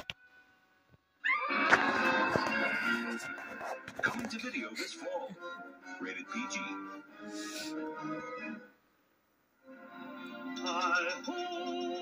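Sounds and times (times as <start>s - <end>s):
shrill scream through tv speaker: 1.2s - 2.0s.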